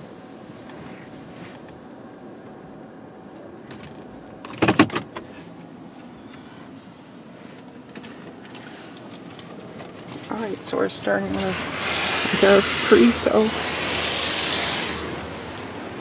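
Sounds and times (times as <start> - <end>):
loud mechanical burst: 11.4 - 15.8.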